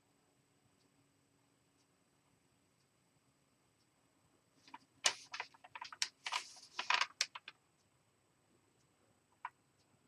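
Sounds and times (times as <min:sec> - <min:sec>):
scratchy rustles: 0:04.6 - 0:07.5.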